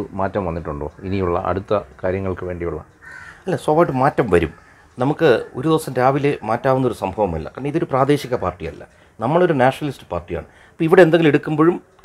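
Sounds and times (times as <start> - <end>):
bird calling: 2.8 - 5.7.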